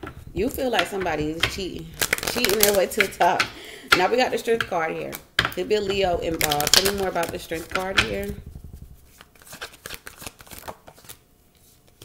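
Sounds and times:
cards being shuffled: 6.3 - 12.0.

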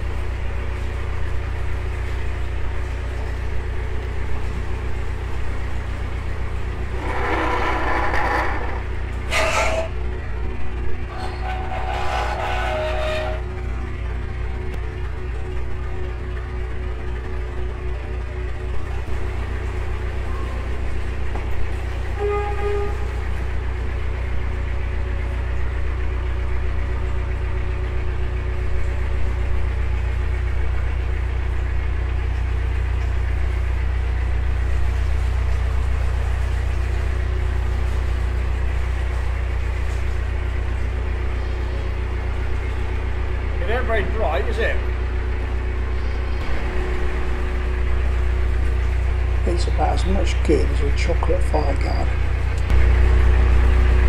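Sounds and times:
boat engine running in tunnel: 0.0 - 54.0.

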